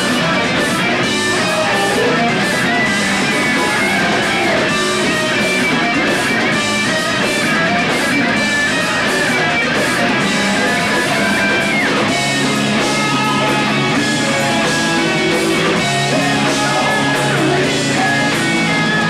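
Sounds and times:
rock band playing: 0.0 - 19.0.

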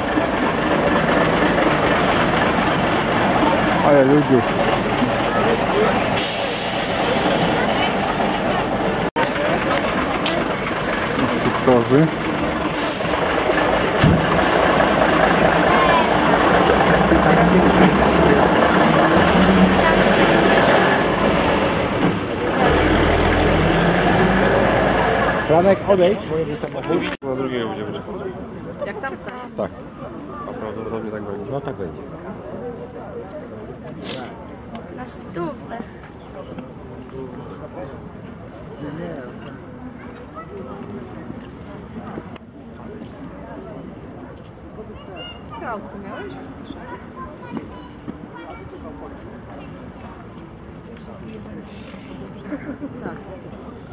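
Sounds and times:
bus diesel engine passing: 0.0 - 29.0
people talking indistinctly: 1.0 - 14.1.

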